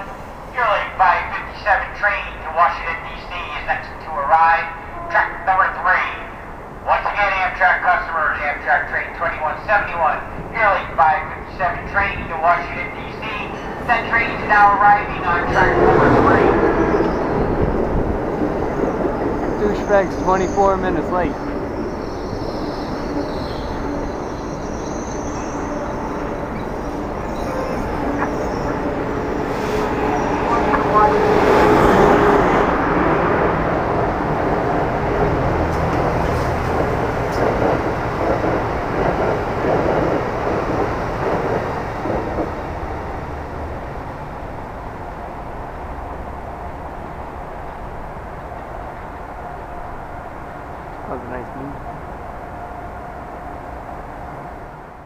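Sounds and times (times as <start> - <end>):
electric trains passing: 0.0 - 55.0.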